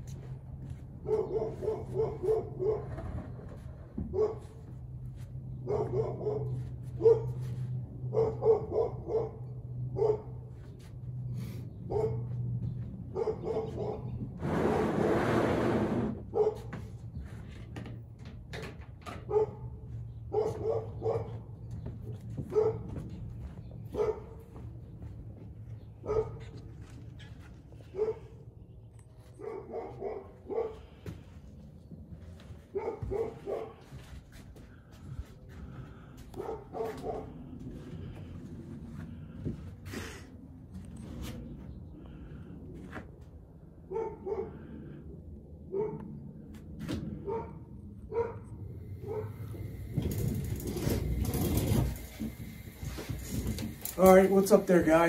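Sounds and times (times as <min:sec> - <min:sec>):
dog barking: 0:01.0 - 0:03.0, 0:04.1 - 0:04.6, 0:05.6 - 0:07.5, 0:08.1 - 0:10.4, 0:11.9 - 0:12.4, 0:13.1 - 0:14.1, 0:16.3 - 0:16.7, 0:19.3 - 0:19.7, 0:20.3 - 0:21.4, 0:22.5 - 0:22.9, 0:23.9 - 0:24.4, 0:26.0 - 0:26.5, 0:27.9 - 0:28.4, 0:29.4 - 0:30.8, 0:32.7 - 0:33.8, 0:36.3 - 0:37.3, 0:43.9 - 0:44.7, 0:45.7 - 0:46.1, 0:47.2 - 0:49.4
steady low hum: 0:30.4 - 0:55.0.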